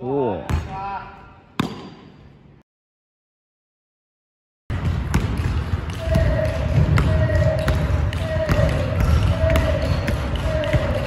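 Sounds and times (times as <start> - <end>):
basketball bouncing on wooden floor: 4.7 - 11.0.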